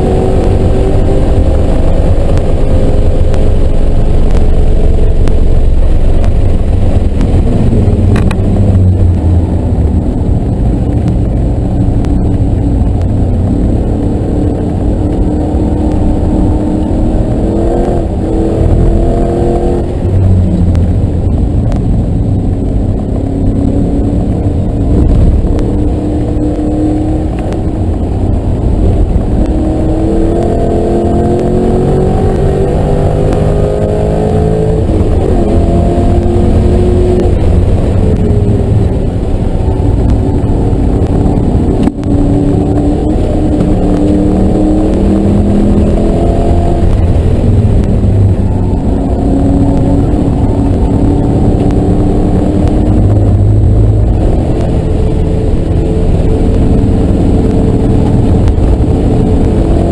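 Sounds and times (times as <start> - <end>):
car engine at full throttle: 0.0 - 59.9.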